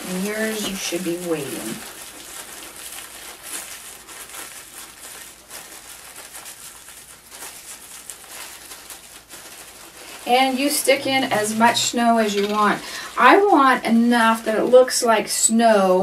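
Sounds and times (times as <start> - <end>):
plastic package crinkling: 0.0 - 14.5.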